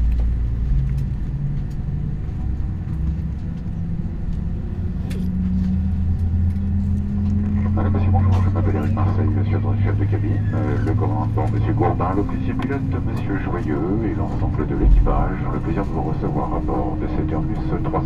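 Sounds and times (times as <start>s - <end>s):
jet engines humming: 0.0s - 18.0s
indistinct voices talking: 7.4s - 18.0s.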